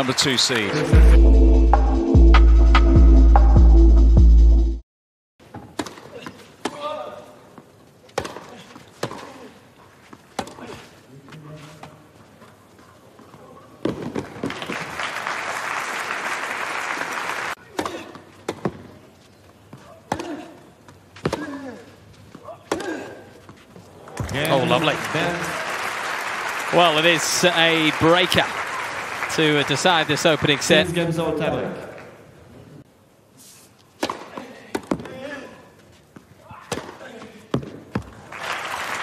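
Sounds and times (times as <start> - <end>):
crowd applause: 0.0 - 0.9, 14.4 - 17.6, 24.0 - 31.3, 38.2 - 39.0
racket striking tennis ball: 5.5 - 6.9, 8.1 - 9.4, 34.0 - 35.2, 36.6 - 37.8.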